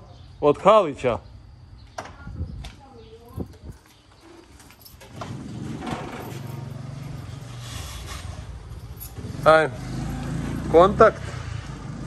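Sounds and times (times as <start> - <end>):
vehicle engine running: 5.2 - 12.0.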